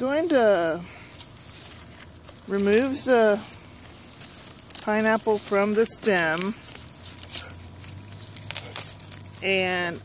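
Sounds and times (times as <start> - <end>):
leaves rustling and crackling: 0.0 - 10.0.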